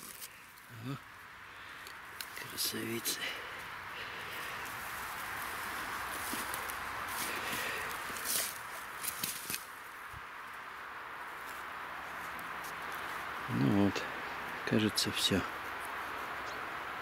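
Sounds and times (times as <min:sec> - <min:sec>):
twigs snapping: 0:00.0 - 0:00.7, 0:01.7 - 0:02.5, 0:04.4 - 0:09.8
footsteps through dry grass: 0:02.2 - 0:10.2.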